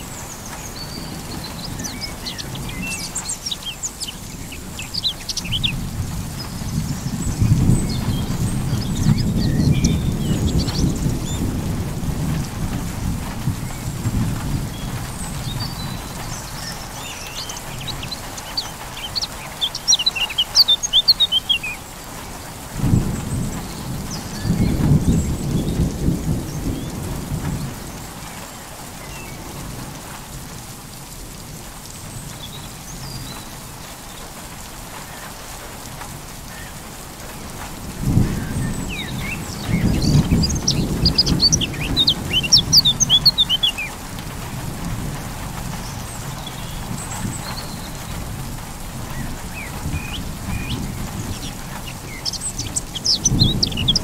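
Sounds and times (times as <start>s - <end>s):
birds chirping: 0.0s - 12.8s, 13.6s - 29.5s, 38.1s - 54.0s
rolling thunder: 0.0s - 18.9s, 22.0s - 28.4s, 37.2s - 54.0s
steady rain: 0.0s - 54.0s.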